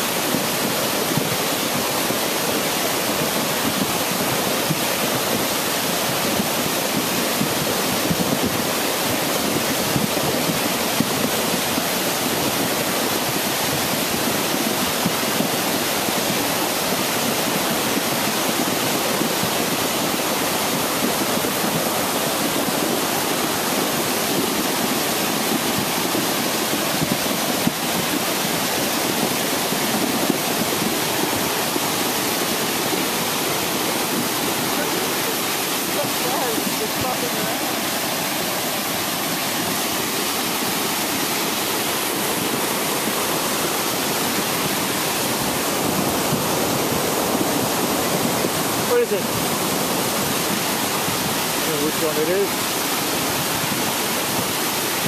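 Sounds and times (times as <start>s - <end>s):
stream rushing over rocks: 0.0s - 55.0s.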